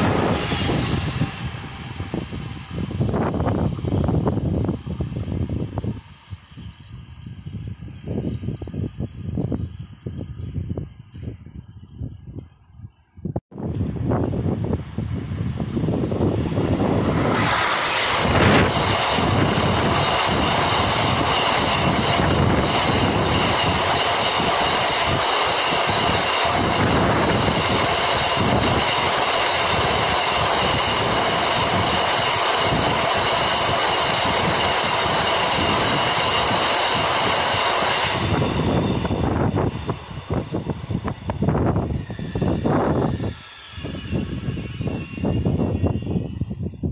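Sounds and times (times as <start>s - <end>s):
locomotive high whine: 0.0s - 12.8s, 13.6s - 46.9s.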